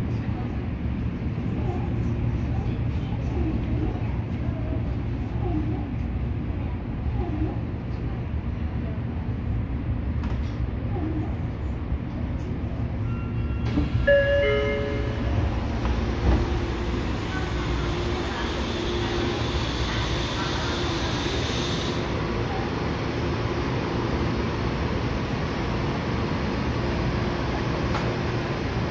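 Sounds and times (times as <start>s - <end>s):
platform hum and hiss: 0.0s - 28.9s
subway car rumbling to a stop: 0.0s - 28.9s
short door chime: 13.0s - 15.4s
train doors hissing open: 13.5s - 22.2s.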